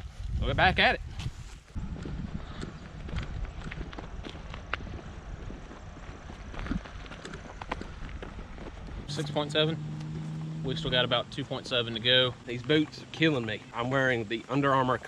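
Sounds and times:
footsteps of people walking: 1.2 - 15.0
low rumble: 1.7 - 13.9.

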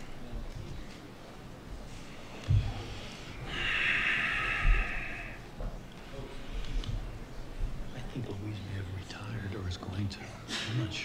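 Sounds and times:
men talking in low voices: 7.7 - 11.0.

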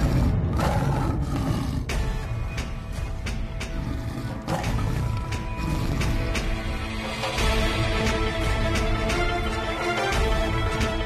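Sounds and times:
tiger roaring: 0.0 - 2.3, 3.6 - 7.4.

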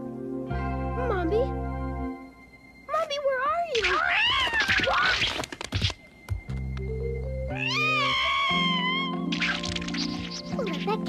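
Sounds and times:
background music: 0.0 - 11.0
cartoon cat yowling: 3.8 - 5.4, 7.5 - 9.8.

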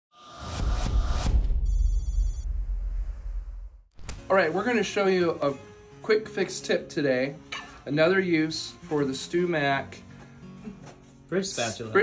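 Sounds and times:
speech: 11.3 - 12.0.

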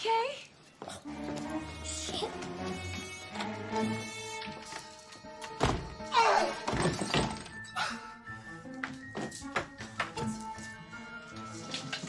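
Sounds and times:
film soundtrack music: 0.7 - 12.0.

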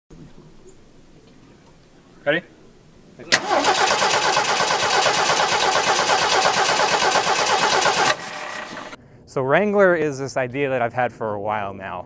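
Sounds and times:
car engine starting and running: 3.2 - 9.0.

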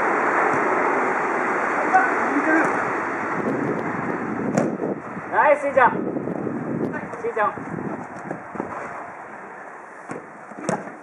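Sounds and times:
wind rumbling on microphone: 0.0 - 9.5
ball taps on artificial turf: 4.5 - 4.7.

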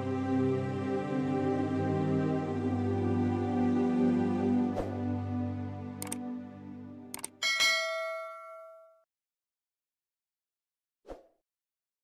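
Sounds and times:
background music: 0.0 - 8.3
mouse clicks: 6.0 - 6.2, 7.1 - 7.4
bright bell ding: 7.4 - 9.0.

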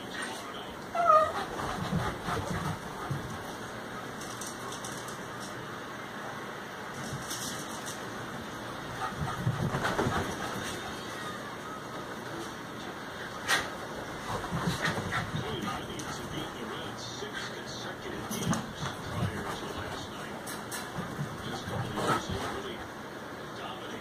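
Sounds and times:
dogs scuffling on a couch: 1.0 - 5.1, 8.9 - 11.0, 13.5 - 16.9, 18.0 - 22.8.

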